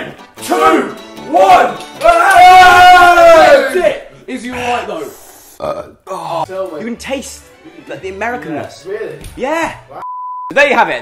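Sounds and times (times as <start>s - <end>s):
man burping: 5.6s - 6.4s.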